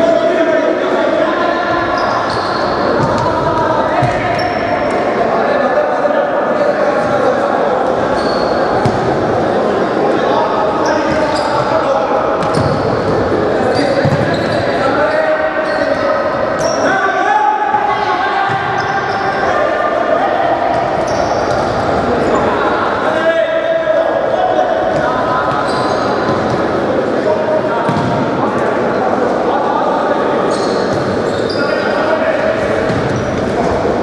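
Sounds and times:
players calling and shouting: 0.0s - 34.0s
shoes squeaking on wooden floor: 12.4s - 15.0s, 25.5s - 26.7s.

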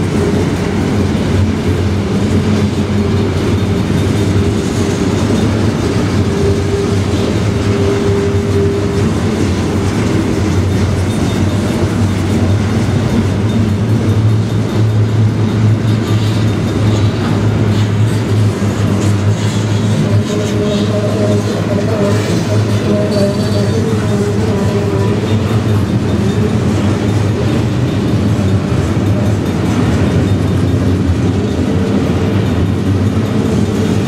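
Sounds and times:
steel wheels rolling on rail: 0.0s - 34.0s.

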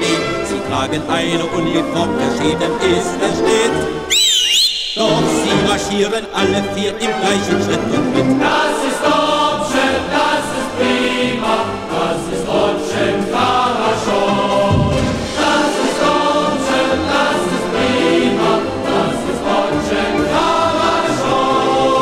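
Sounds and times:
choir singing a march: 0.0s - 22.0s.

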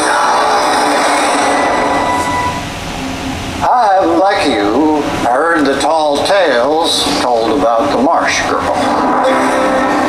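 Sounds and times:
dense noisy drone with held tones: 0.0s - 10.0s.

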